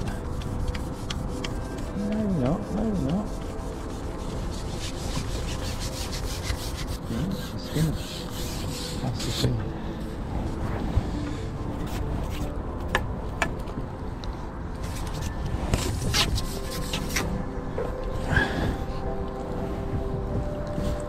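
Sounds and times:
fishing pole sections rasping: 0:00.0 - 0:09.6.

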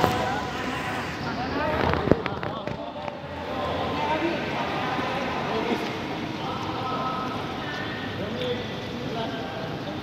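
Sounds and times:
group of people talking: 0:00.0 - 0:10.0.

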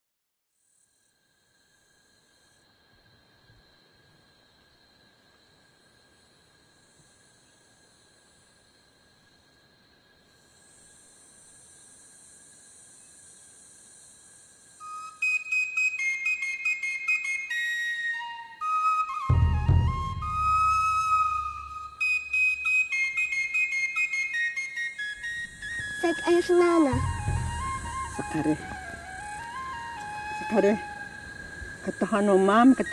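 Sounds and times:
soft high hiss: 0:00.6 - 0:32.9
faint high-pitched tones: 0:14.8 - 0:32.9
flute-like melody: 0:14.8 - 0:32.9.

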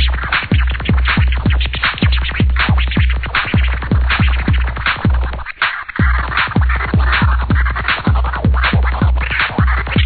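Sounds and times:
electronic dance music: 0:00.0 - 0:10.0
fast steady kick drum: 0:00.0 - 0:10.0
turntable scratching: 0:00.0 - 0:10.0.

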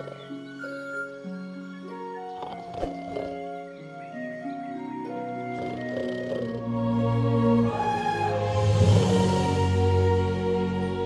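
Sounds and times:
orchestral music with held notes: 0:00.0 - 0:11.0.

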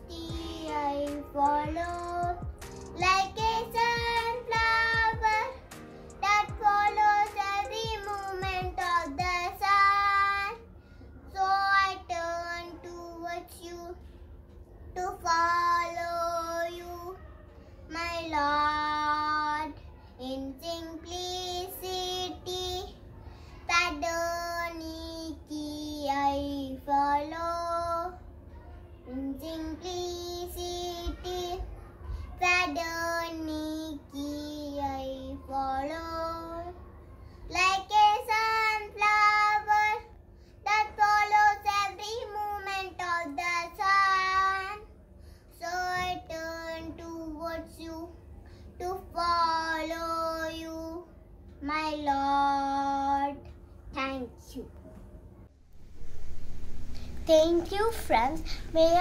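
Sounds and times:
boy singing a prayer song: 0:00.0 - 0:10.6, 0:15.0 - 0:17.2, 0:29.1 - 0:36.8, 0:37.5 - 0:40.1, 0:40.7 - 0:44.9, 0:45.5 - 0:48.2, 0:48.8 - 0:53.4, 0:57.1 - 0:59.0.

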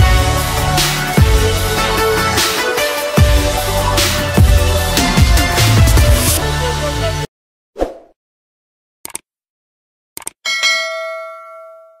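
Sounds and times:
bright bell ding: 0:10.5 - 0:12.0.

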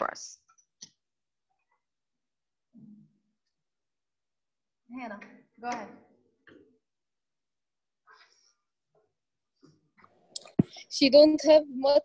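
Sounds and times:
student speaking over call audio: 0:10.4 - 0:12.0.

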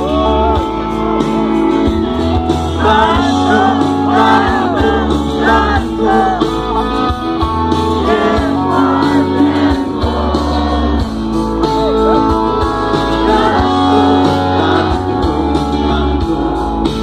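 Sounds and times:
drums: 0:00.0 - 0:17.0
electric guitars: 0:00.0 - 0:17.0
heavy bass: 0:00.0 - 0:17.0
person singing lead vocal: 0:00.0 - 0:17.0.

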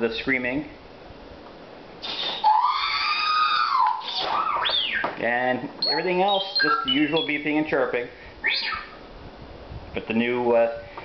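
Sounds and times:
robot electronic wail: 0:02.2 - 0:05.2, 0:05.8 - 0:07.4, 0:08.4 - 0:09.0.

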